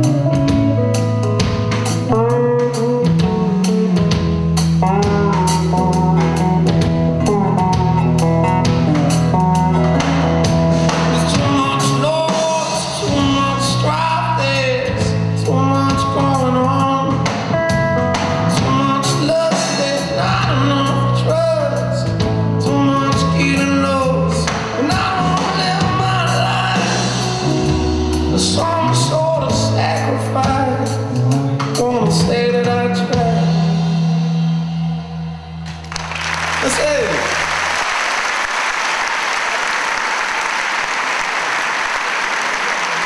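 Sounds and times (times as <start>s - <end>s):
lap slide guitar: 0.0s - 35.3s
bass line: 0.0s - 37.8s
live band closing chord: 0.0s - 43.0s.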